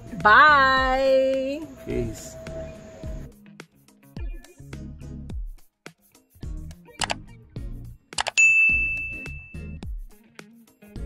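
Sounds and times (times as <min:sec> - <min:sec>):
background music: 0:00.0 - 0:11.0
bright bell-like ding: 0:08.4 - 0:09.8.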